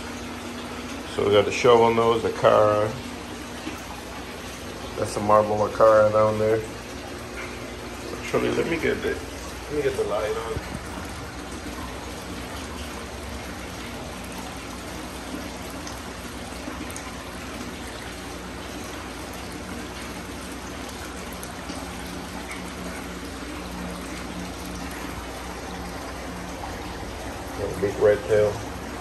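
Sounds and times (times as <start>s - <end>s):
water trickling into fish tank: 0.0s - 29.0s.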